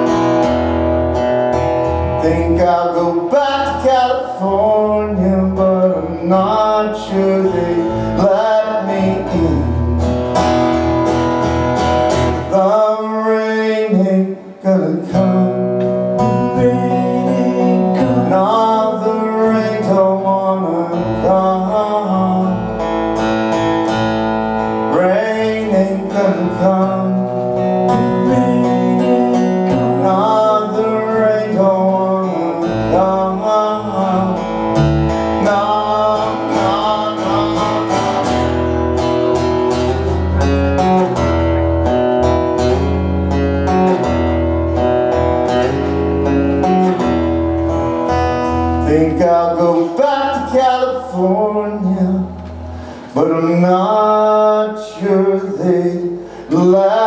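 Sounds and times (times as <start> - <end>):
strummed acoustic guitar: 0.0 - 57.0
man singing: 1.8 - 10.6, 12.1 - 23.2, 24.7 - 41.3, 48.0 - 57.0.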